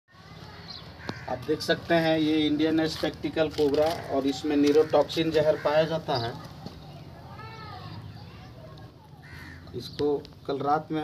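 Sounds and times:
low outdoor background: 0.1 - 11.0.

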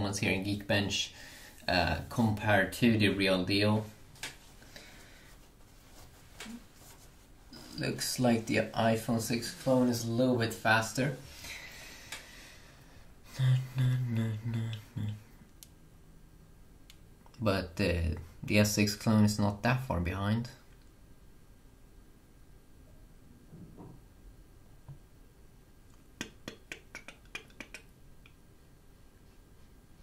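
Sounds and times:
man speaking: 1.7 - 3.9, 7.6 - 11.2, 17.4 - 20.6.

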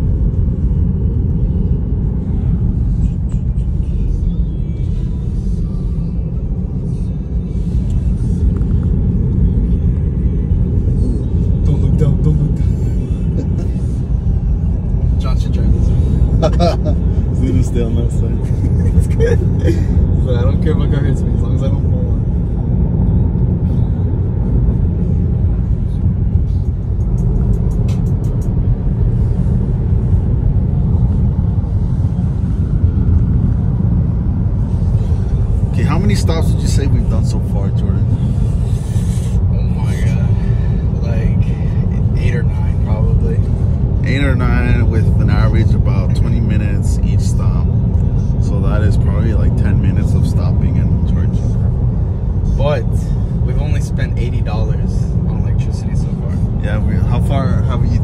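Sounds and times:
road and tyre rumble in car cabin: 0.0 - 58.0.

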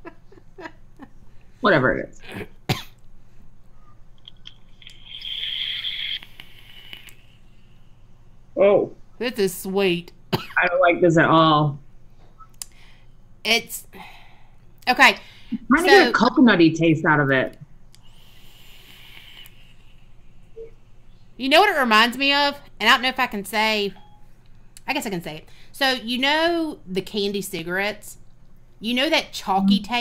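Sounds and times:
vape coil crackling hiss: 4.8 - 7.8, 18.0 - 19.9.

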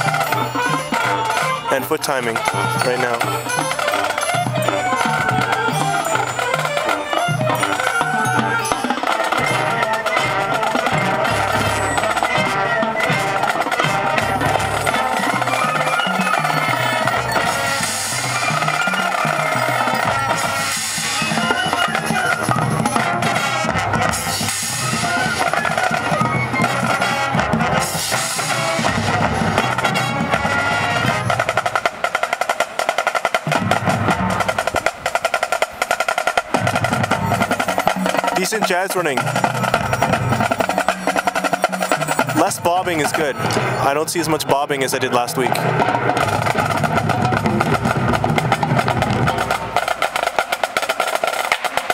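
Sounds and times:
snare drums and rolls: 0.0 - 51.9
woodwinds and brass: 0.0 - 51.9.

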